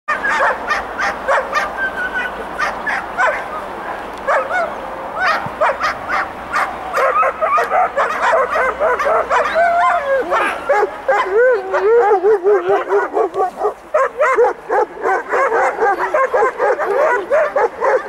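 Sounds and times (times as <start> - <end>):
dogs yelping and whining: 0.1 - 3.6, 4.3 - 18.0.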